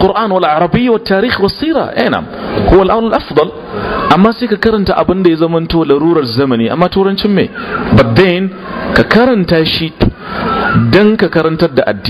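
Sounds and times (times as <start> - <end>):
man speaking in a lecture: 0.0 - 12.0.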